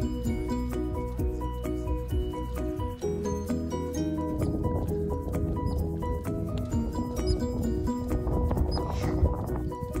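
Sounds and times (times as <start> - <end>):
steady low bass: 0.0 - 10.0
stepping melody: 0.0 - 10.0.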